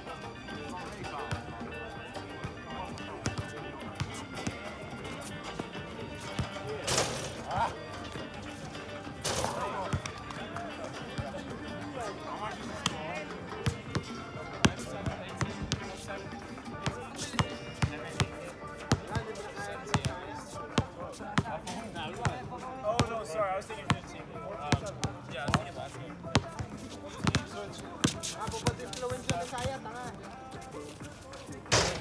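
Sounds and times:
music: 0:00.0 - 0:32.0
voices: 0:00.0 - 0:32.0.

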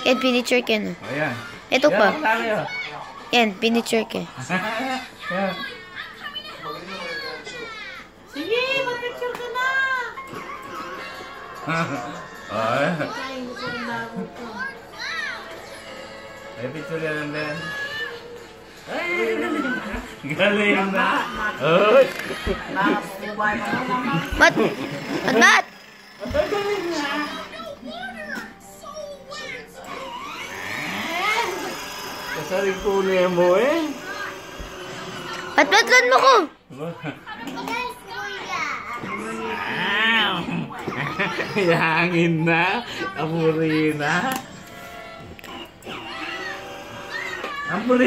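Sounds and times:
toddler speaking: 0:00.0 - 0:01.0, 0:01.7 - 0:04.3, 0:13.1 - 0:15.5, 0:24.2 - 0:32.9, 0:33.9 - 0:36.5, 0:37.4 - 0:39.9
background music: 0:00.0 - 0:07.0, 0:08.0 - 0:36.8, 0:38.1 - 0:48.0.

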